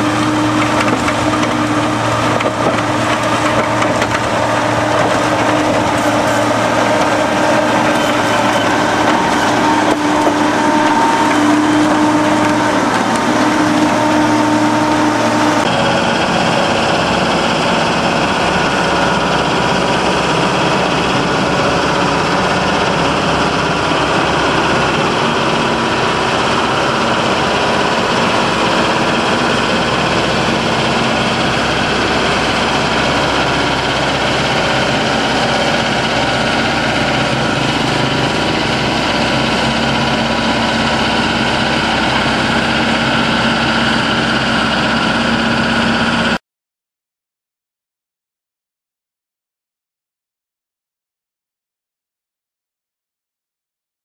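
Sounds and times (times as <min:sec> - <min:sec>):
road roller diesel engine running: 0:00.0 - 0:46.4.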